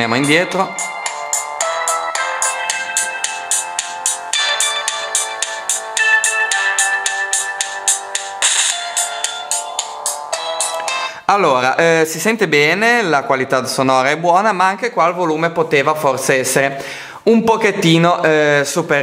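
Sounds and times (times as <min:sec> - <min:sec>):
music through phone loudspeaker: 0:00.0 - 0:11.3.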